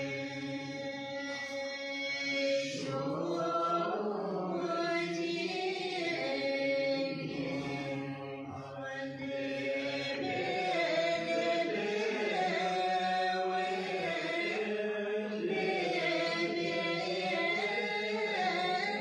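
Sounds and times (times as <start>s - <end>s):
voices chanting in held notes: 0.0s - 19.0s.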